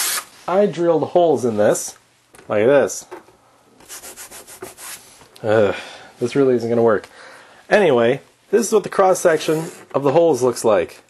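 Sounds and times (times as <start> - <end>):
chalk scratching on chalkboard: 3.8 - 5.1.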